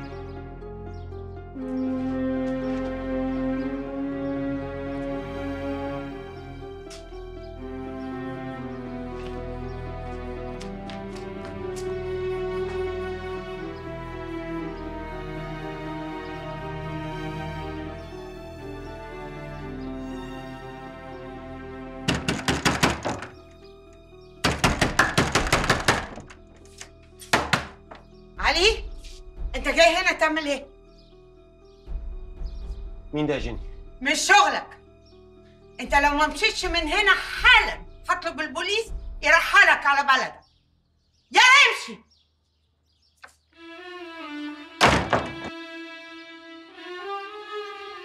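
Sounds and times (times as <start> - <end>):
background music: 0.0 - 42.2, 43.0 - 48.0
fist pounding on wooden door: 22.1 - 23.4, 24.4 - 26.3, 27.4 - 27.8, 44.8 - 45.5.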